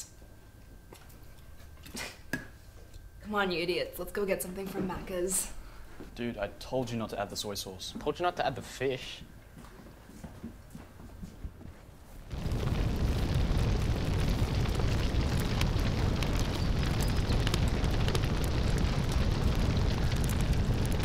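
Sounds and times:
big fire burning: 0:12.2 - 0:21.0
fire crackles: 0:12.2 - 0:21.0.

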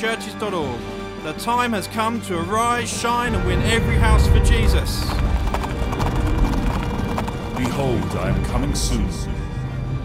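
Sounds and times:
dramatic background music: 0:00.0 - 0:10.0
galloping hoofbeats: 0:03.3 - 0:10.0.

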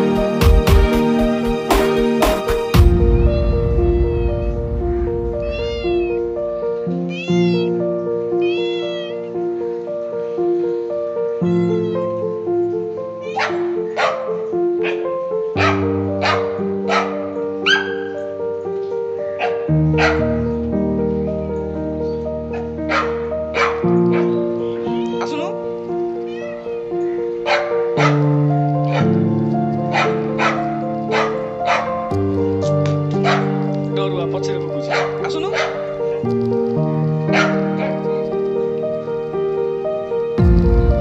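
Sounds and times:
background music with held notes: 0:00.0 - 0:41.0
cat meowing: 0:03.1 - 0:09.4, 0:11.3 - 0:12.4, 0:13.2 - 0:14.1, 0:22.9 - 0:28.2.

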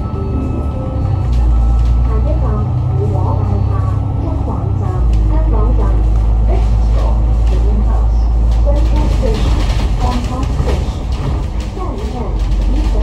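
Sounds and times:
bus engine rumble: 0:00.0 - 0:13.0
voices: 0:00.0 - 0:13.0.

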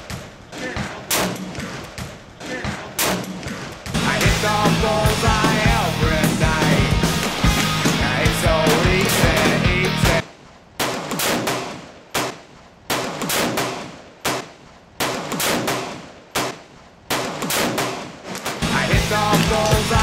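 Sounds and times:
rock music: 0:03.9 - 0:10.2, 0:18.6 - 0:20.0
heavy revolver shots: 0:10.8 - 0:18.7.

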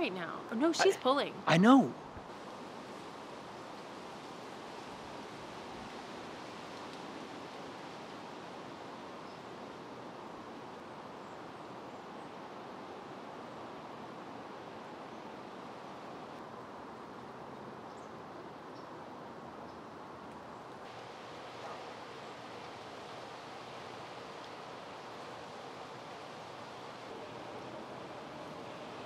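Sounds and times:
outdoor ambient hiss: 0:00.0 - 0:29.0.

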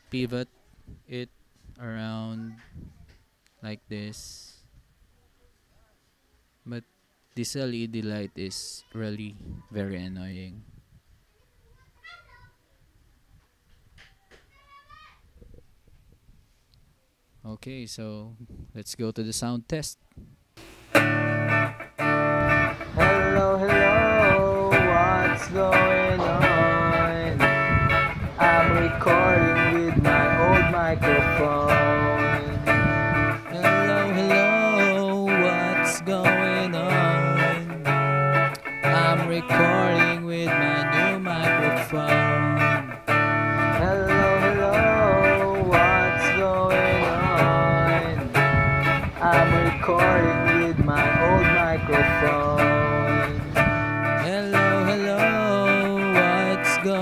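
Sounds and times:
electric guitar lead with string bends: 0:20.6 - 0:57.0.

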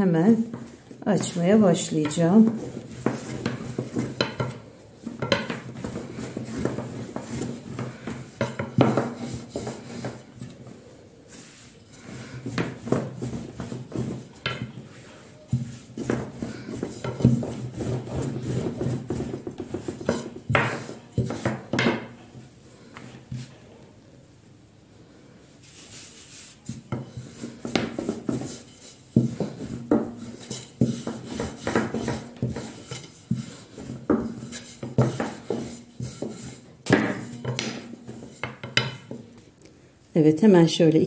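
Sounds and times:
rolling pin rolling dough: 0:00.0 - 0:23.8, 0:25.5 - 0:39.6
wood knocking on counter: 0:02.4 - 0:04.6, 0:05.2 - 0:10.2.

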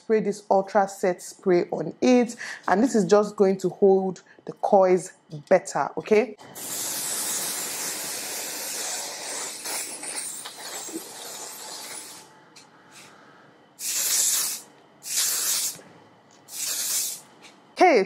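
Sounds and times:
aerosol can spraying: 0:06.6 - 0:09.9, 0:10.5 - 0:12.2, 0:13.8 - 0:15.8, 0:16.5 - 0:17.2.

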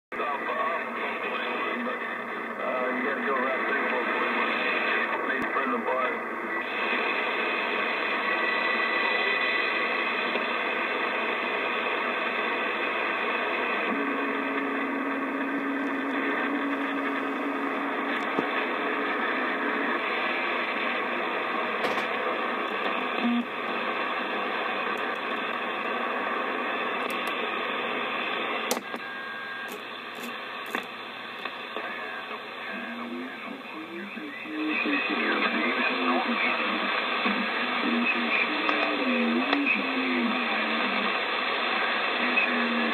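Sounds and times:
radio static hiss: 0:00.1 - 0:42.9
radio switch click: 0:28.7 - 0:29.0.

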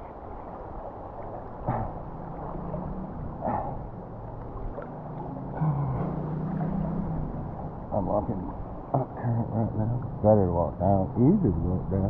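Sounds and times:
river water splashing around legs: 0:00.0 - 0:10.3
low hum: 0:00.0 - 0:12.0
person sighing: 0:05.6 - 0:06.0.

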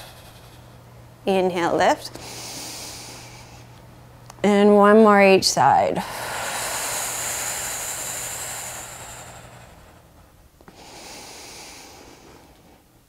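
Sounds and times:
woman exhaling: 0:00.0 - 0:00.7, 0:06.0 - 0:10.0
soft breath in: 0:02.2 - 0:03.7, 0:06.0 - 0:10.1, 0:10.7 - 0:12.8.

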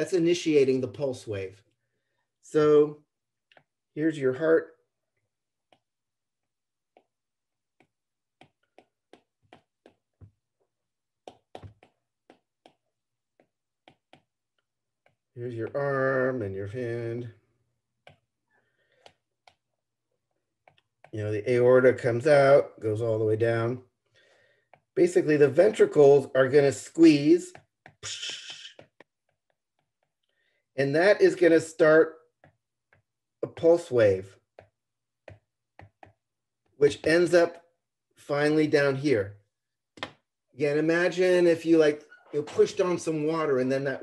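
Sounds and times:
stylus tapping drawing tablet: 0:03.4 - 0:03.9, 0:05.4 - 0:17.0, 0:17.9 - 0:21.3, 0:24.6 - 0:30.4, 0:31.9 - 0:37.6, 0:40.0 - 0:40.3.

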